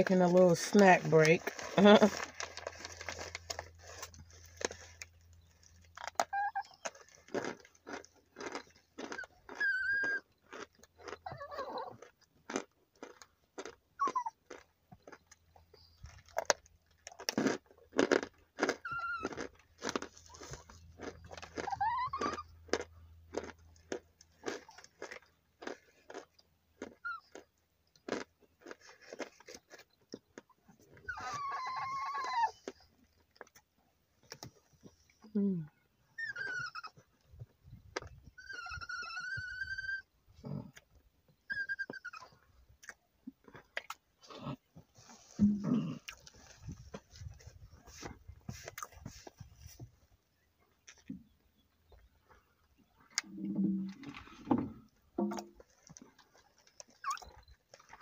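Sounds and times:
crunching and chewing: 0.0s - 58.0s
small dog whining: 6.0s - 7.0s, 9.1s - 10.4s, 11.0s - 12.0s, 14.0s - 14.5s, 18.8s - 19.4s, 21.5s - 22.7s, 27.0s - 27.4s, 31.0s - 32.8s, 35.5s - 37.2s, 38.3s - 40.7s, 41.4s - 42.4s, 56.9s - 57.5s.

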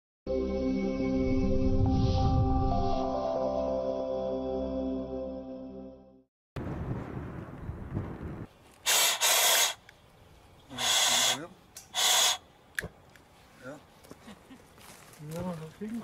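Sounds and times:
propane burner hissing: 8.8s - 9.8s, 10.7s - 12.4s.

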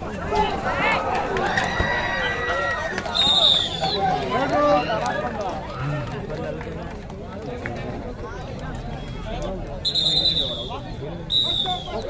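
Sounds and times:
crowd shouting: 0.0s - 6.1s.

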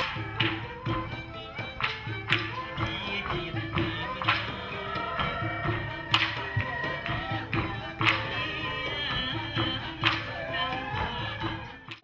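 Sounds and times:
folk drum ensemble music: 0.0s - 12.0s
sharp percussive strikes: 0.0s - 12.0s.

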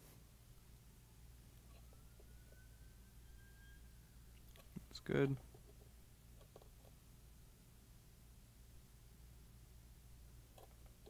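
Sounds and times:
low hum: 0.0s - 11.0s
faint thin whistle: 1.6s - 4.5s.

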